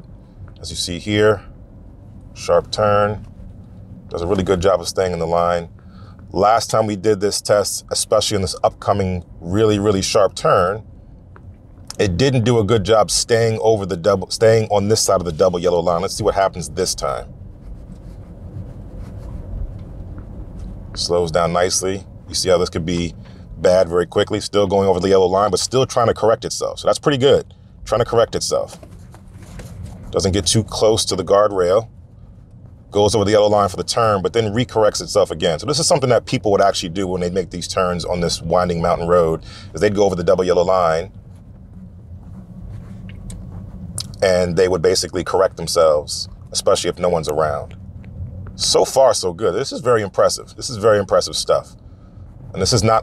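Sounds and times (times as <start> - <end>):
road and tyre rumble in car: 0.0 - 53.0.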